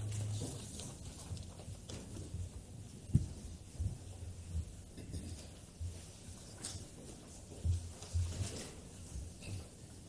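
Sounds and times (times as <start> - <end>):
children's footsteps and shuffling: 0.0 - 10.0
low steady hum: 0.0 - 10.0.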